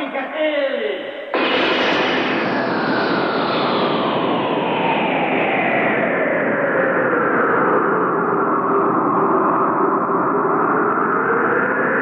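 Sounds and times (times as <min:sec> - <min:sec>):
dense rushing noise: 0:01.4 - 0:06.7.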